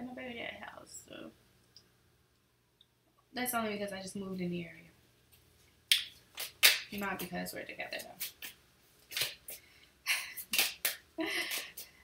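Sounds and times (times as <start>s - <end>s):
card snap: 5.9s - 6.9s, 8.2s - 9.5s
cards rustling: 7.9s - 9.6s
cards shuffled in hands: 7.9s - 9.6s.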